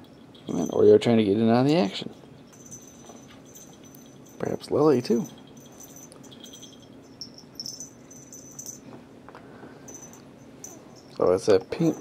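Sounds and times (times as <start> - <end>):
small bell jingling: 0.0 - 9.0, 9.8 - 12.0.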